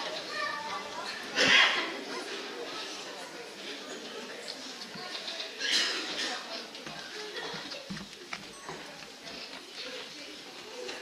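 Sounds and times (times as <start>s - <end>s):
chatter of children and adults: 0.0s - 11.0s.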